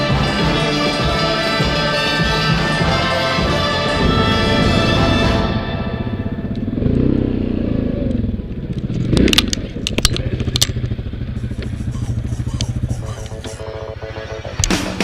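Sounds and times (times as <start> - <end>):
quad bike engine running: 0.0 - 15.0
quad bike tipping over clatter: 8.6 - 11.0.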